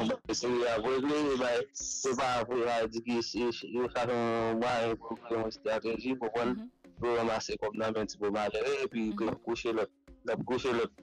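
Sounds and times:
person talking or chanting: 0:00.0 - 0:11.0.

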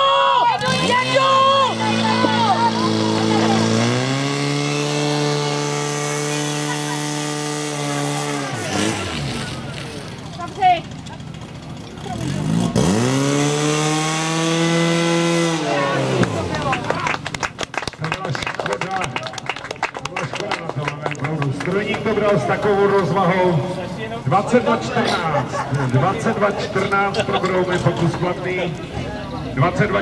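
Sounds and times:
pump engine at high revs: 0:00.0 - 0:28.3.

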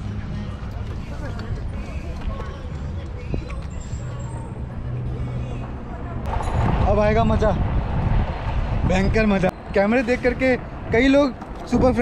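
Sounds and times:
wind rumble on microphone: 0:06.2 - 0:12.0.

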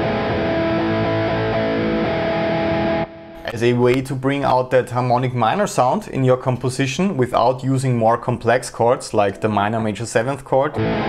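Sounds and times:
distorted electric guitar chords: 0:00.0 - 0:03.5, 0:10.8 - 0:11.0.

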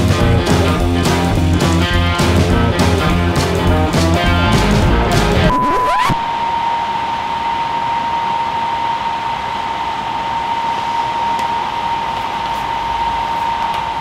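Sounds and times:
high whine: 0:00.0 - 0:14.0.

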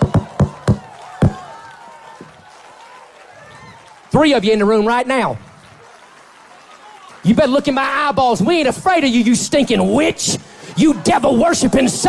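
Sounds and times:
feet stomping on stage floor: 0:00.0 - 0:02.5.

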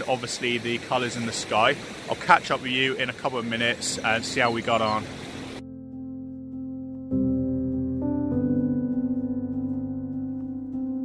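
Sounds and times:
outdoor recording hiss: 0:00.0 - 0:05.6
soft music of held notes: 0:03.9 - 0:11.0.

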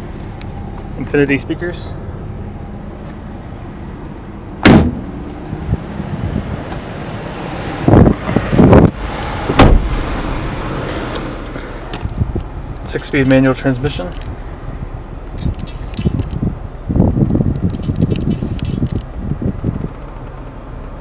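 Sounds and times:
outdoor background noise: 0:00.0 - 0:21.0
car doors and body thumping: 0:04.6 - 0:05.8, 0:06.4 - 0:06.9, 0:07.8 - 0:10.2.

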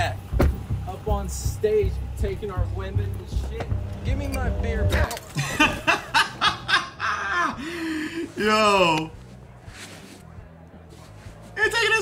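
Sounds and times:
man laughing: 0:05.4 - 0:08.3.

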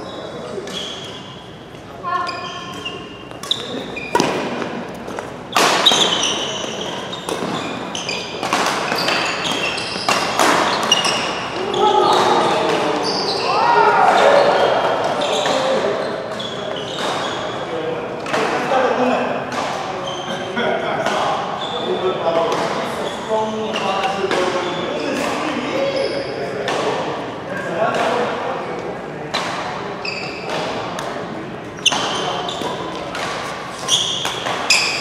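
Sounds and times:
shoes squeaking on court: 0:00.0 - 0:11.6, 0:13.0 - 0:13.6, 0:15.0 - 0:17.7, 0:21.6 - 0:22.0, 0:30.0 - 0:35.0
rackets striking shuttlecock: 0:02.7 - 0:11.5.

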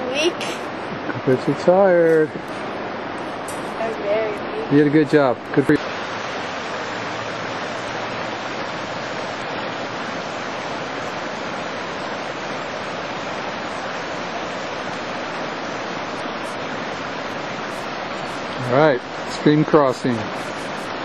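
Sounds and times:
stream rushing over rocks: 0:00.0 - 0:21.0.

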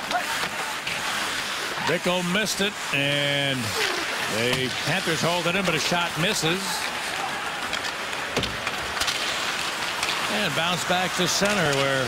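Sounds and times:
hockey sticks and puck clacking: 0:00.0 - 0:02.9, 0:03.7 - 0:12.0
arena crowd din: 0:00.0 - 0:12.0
skates on ice: 0:00.0 - 0:12.0.

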